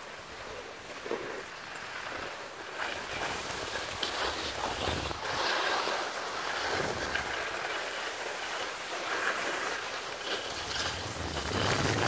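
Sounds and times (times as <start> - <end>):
skis sliding over snow: 0.0 - 12.0.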